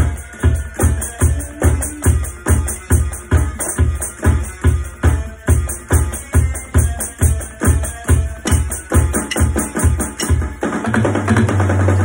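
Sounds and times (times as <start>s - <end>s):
kick drum beats: 0.0s - 12.0s
rapid drum hits: 8.4s - 12.0s.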